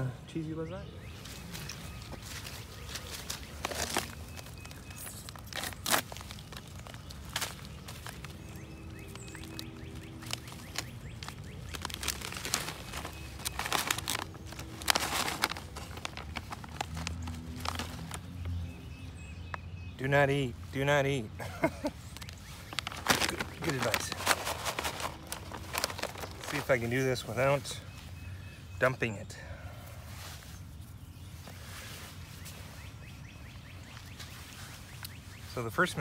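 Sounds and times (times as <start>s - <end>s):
foil pouch tearing and crinkling: 3.2s - 18.6s, 21.9s - 26.8s.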